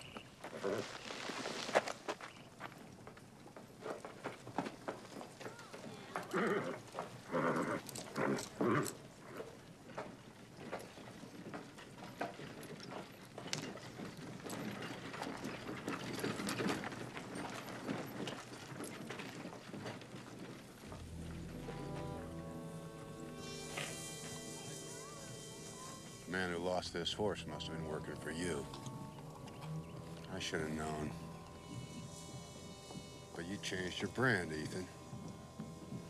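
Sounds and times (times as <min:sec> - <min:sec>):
hooves stepping on dirt: 0:00.0 - 0:36.0.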